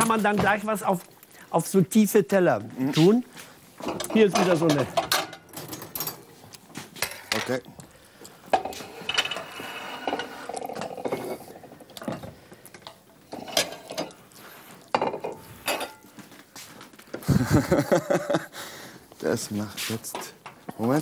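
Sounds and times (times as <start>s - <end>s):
plates and cutlery clattering: 3.8s - 7.6s, 8.5s - 14.2s, 14.8s - 16.2s.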